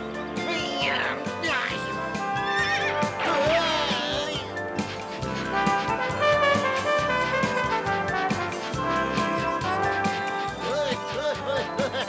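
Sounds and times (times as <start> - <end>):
background music with steady beat: 0.0 - 12.0
cartoon horse whinnying: 0.6 - 4.5.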